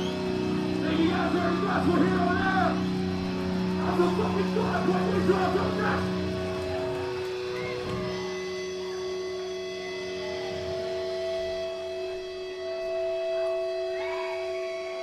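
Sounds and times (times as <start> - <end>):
guitar amplifier feedback: 0.0 - 15.0.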